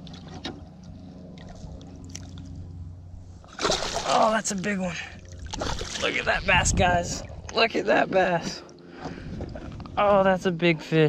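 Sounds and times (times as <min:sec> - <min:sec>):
fish splashing at water surface: 0:03.4 - 0:04.3, 0:05.3 - 0:06.1.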